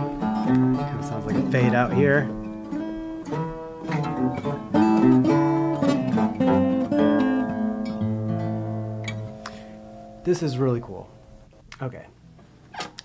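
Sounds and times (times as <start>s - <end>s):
fingerstyle acoustic guitars: 0.0s - 11.6s.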